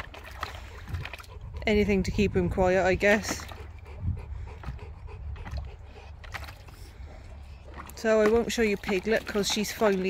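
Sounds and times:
dog panting and snuffling: 0.2s - 10.0s.

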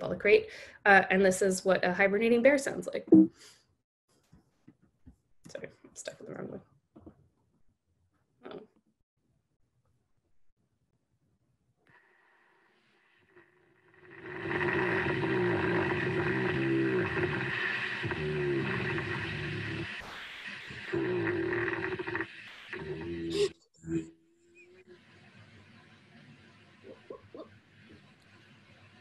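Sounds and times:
steady low hum: 14.0s - 24.0s
bear snoring: 14.0s - 24.1s.

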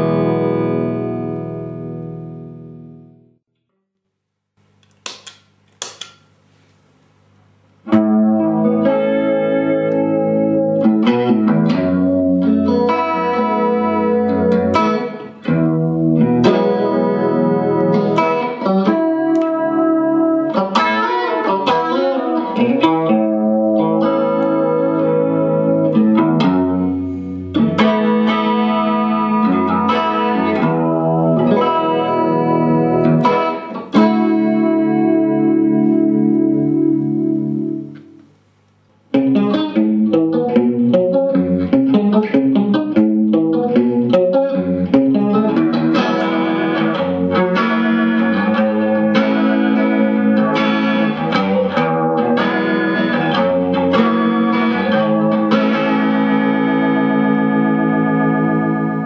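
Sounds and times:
electric guitar chords with chorus: 0.0s - 3.4s, 7.7s - 38.4s, 39.1s - 59.0s.

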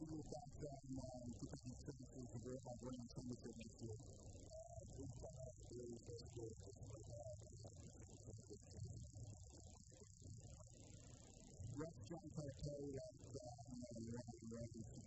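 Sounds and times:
muffled voice talking: 0.0s - 7.6s, 11.7s - 15.0s.

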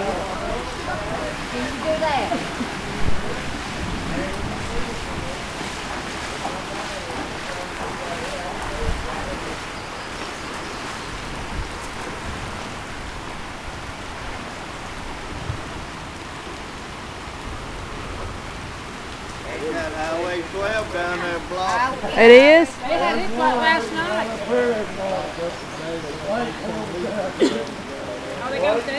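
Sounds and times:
low bumps: 0.0s - 9.7s
faint voices: 0.0s - 12.2s, 19.3s - 28.9s
rain falling on water: 0.0s - 28.9s.

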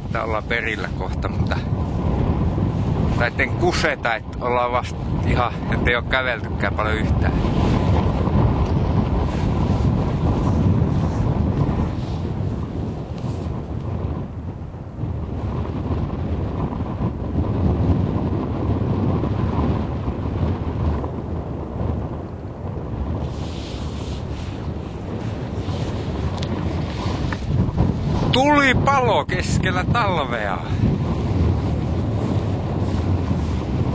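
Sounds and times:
wind buffeting microphone: 0.0s - 33.9s.

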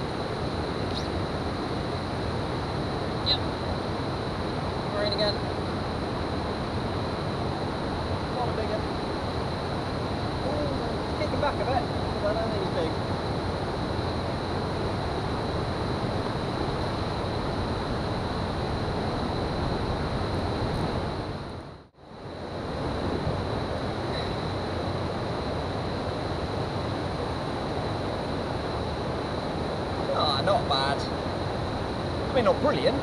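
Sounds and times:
faint high-pitched whine: 0.0s - 33.0s
wind buffeting microphone: 0.0s - 33.0s.

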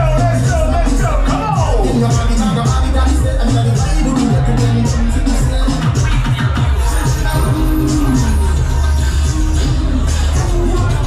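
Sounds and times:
loud music with heavy bass: 0.0s - 11.0s.

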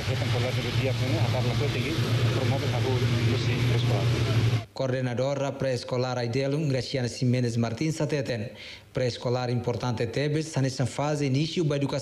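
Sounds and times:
steady low hum: 0.0s - 4.8s
man speaking: 0.0s - 12.0s.

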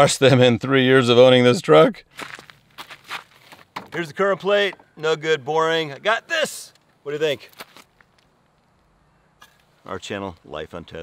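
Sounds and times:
footsteps on dirt and dry leaves: 2.1s - 3.8s, 7.4s - 8.8s.

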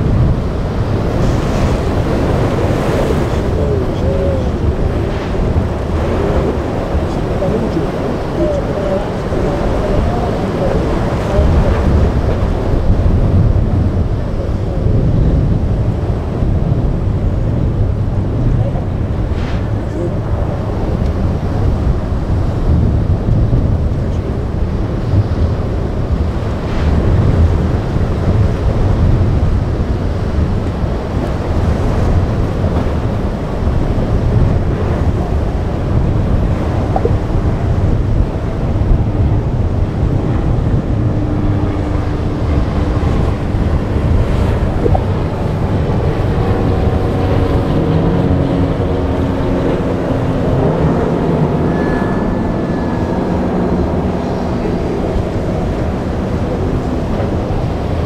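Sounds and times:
outboard engine drone: 0.0s - 58.0s
surf breaking: 0.0s - 58.0s
wind buffeting microphone: 0.0s - 58.0s.

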